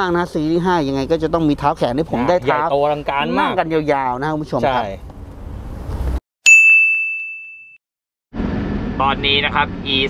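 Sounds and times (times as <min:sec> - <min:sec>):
bright chime ding: 0:06.5 - 0:07.8.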